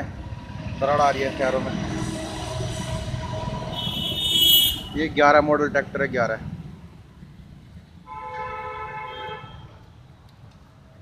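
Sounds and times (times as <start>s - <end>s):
two-tone vehicle horn blare: 3.7s - 5.0s.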